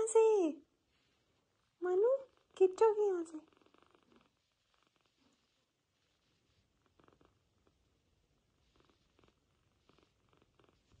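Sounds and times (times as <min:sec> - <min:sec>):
kitten purring: 0:01.2 - 0:11.0.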